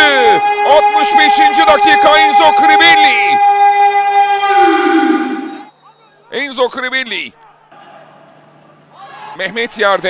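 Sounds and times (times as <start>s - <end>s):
commentator shouting: 0.0s - 4.8s.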